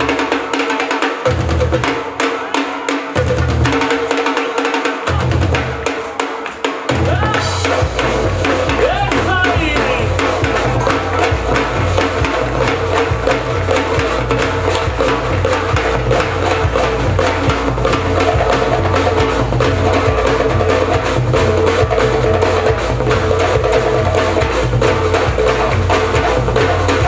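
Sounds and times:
drum kit and hand drums: 0:00.0 - 0:27.0
wood-block-like strikes: 0:00.0 - 0:27.0
low bass line: 0:10.0 - 0:25.0.

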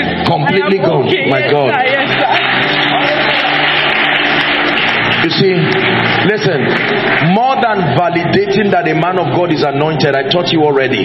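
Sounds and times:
congregation cheering and applauding: 0:00.0 - 0:11.0.

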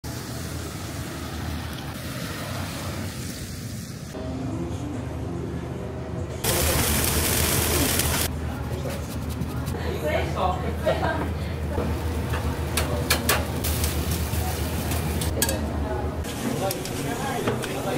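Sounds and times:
loud steady hiss: 0:06.4 - 0:08.3.

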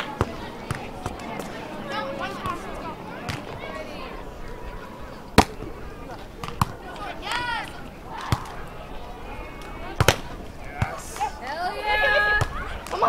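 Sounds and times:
volleyball hand slaps: 0:05.4 - 0:05.6, 0:06.4 - 0:08.6, 0:09.6 - 0:11.3.

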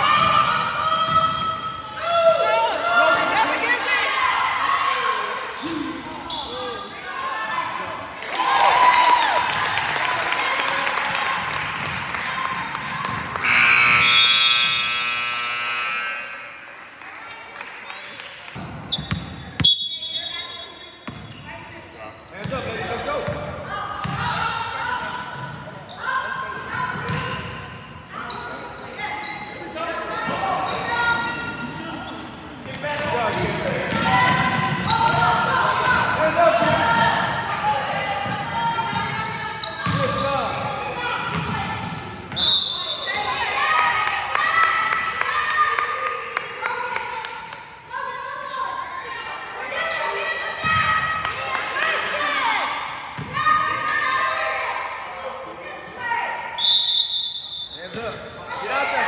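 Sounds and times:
players and spectators voices: 0:00.0 - 0:59.0
short high whistle: 0:56.6 - 0:57.8.

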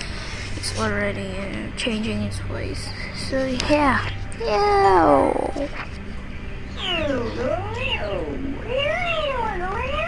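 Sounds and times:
pitch-shifted voice making cat-like sounds: 0:06.8 - 0:10.0.

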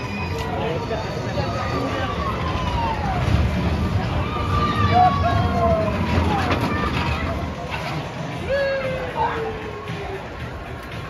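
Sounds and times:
roller coaster rumbling on track: 0:00.0 - 0:11.0
riders screaming: 0:04.1 - 0:07.1.

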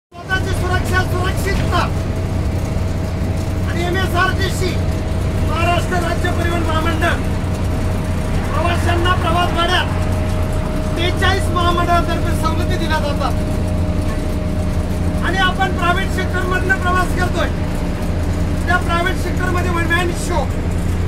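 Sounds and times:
bus engine droning: 0:00.1 - 0:21.0
voices talking: 0:00.2 - 0:20.7.

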